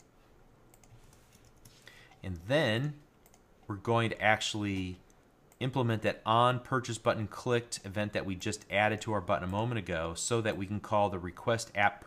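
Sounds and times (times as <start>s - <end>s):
computer keyboard clicks: 3.2s - 3.4s.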